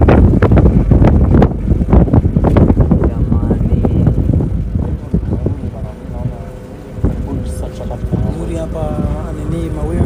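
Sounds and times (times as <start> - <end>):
wind rumbling on microphone: 0.0 - 10.0
faint voices: 2.9 - 10.0.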